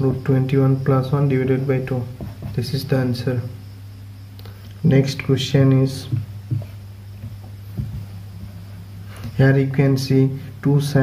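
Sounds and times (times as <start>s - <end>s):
faint background hiss: 0.0s - 11.0s
low electrical hum: 0.0s - 11.0s
soft tap: 6.1s - 8.1s.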